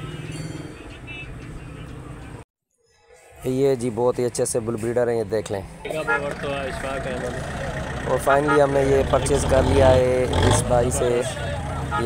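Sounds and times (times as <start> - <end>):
people talking: 3.5 - 12.0
engine hum: 5.9 - 12.0.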